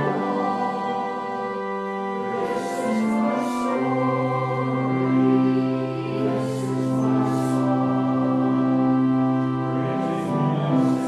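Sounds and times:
congregation singing a hymn: 0.0s - 11.0s
instrumental accompaniment: 0.0s - 11.0s.

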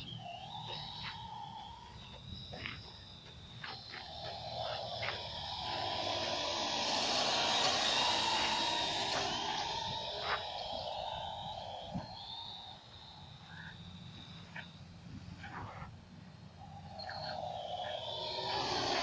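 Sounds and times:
drone rotor noise: 0.0s - 14.8s, 16.4s - 19.0s.

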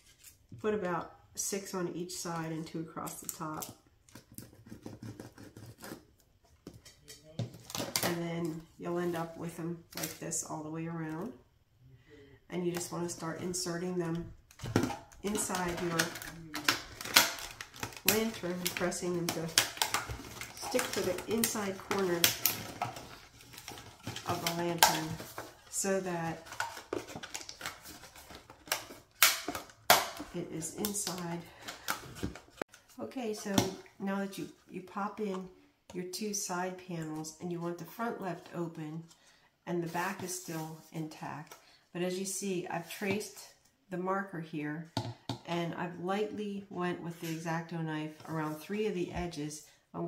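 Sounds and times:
plastic crinkling: 14.6s - 30.3s.

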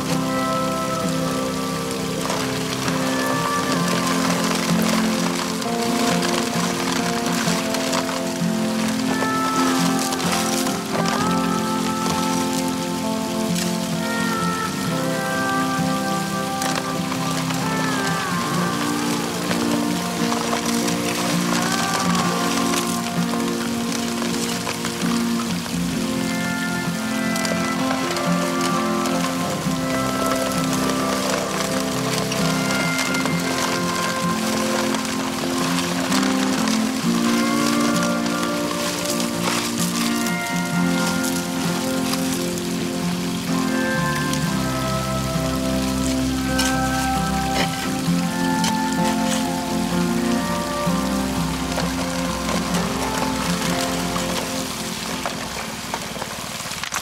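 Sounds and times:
slow background music: 0.0s - 57.0s
water spraying and running: 0.0s - 57.0s.

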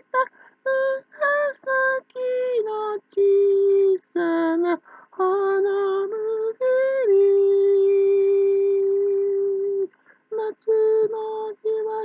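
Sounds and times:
person singing in a high voice: 0.0s - 12.0s.

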